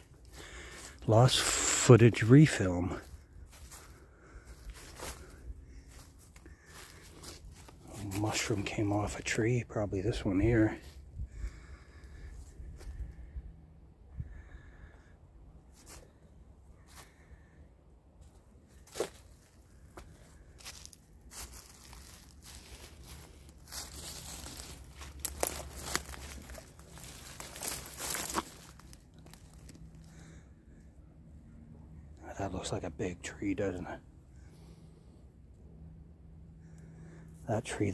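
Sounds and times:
footsteps crunching dry leaves: 0:00.0 - 0:11.1, 0:18.2 - 0:30.3
twigs snapping: 0:20.7 - 0:29.9.

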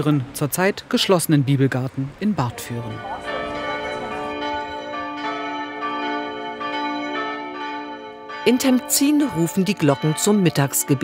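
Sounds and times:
church bells ringing: 0:02.4 - 0:11.0.

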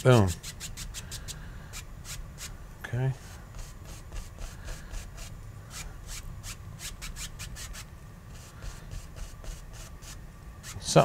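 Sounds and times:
paintbrush strokes on canvas: 0:07.0 - 0:11.0.

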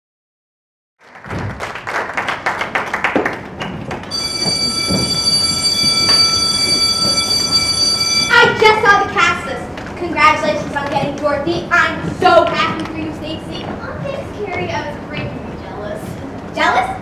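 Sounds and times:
audience applause: 0:01.0 - 0:07.2
steady high tone: 0:04.1 - 0:09.5.

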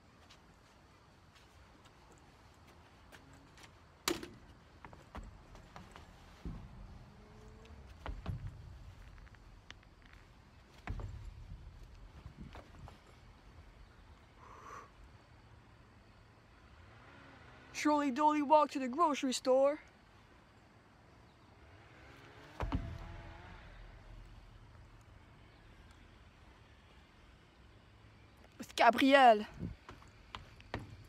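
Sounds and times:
faint knocks and thumps: 0:04.0 - 0:13.2, 0:22.5 - 0:24.6.

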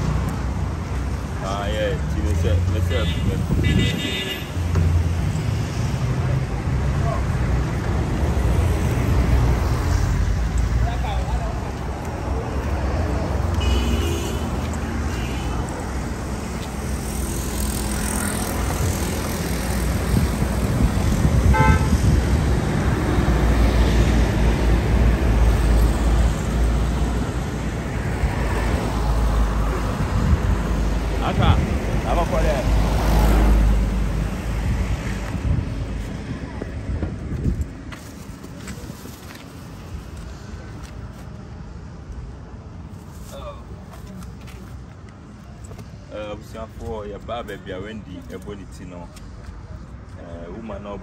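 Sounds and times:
passing cars rumbling: 0:00.0 - 0:42.9
car horn toots: 0:21.5 - 0:22.0.

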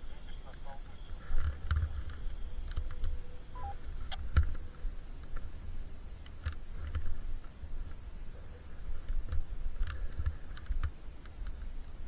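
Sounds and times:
wind rumbling on microphone: 0:00.0 - 0:12.0
two-note electronic beep: 0:03.6 - 0:03.8.

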